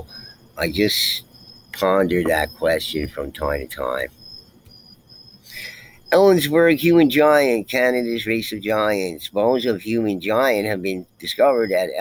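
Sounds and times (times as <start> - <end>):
high-pitched insect chirping: 0.0 - 12.0.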